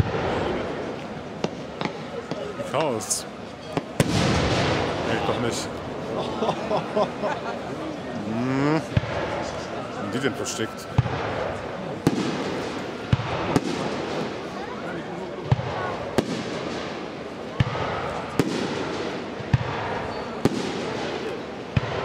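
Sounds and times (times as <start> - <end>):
fireworks bursting: 0.0 - 5.8, 11.0 - 14.6, 15.4 - 22.0
crowd murmur: 0.0 - 22.0.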